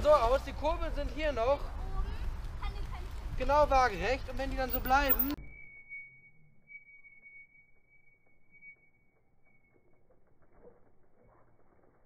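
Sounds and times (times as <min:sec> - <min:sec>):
thin steady high tone: 0:04.8 - 0:10.0.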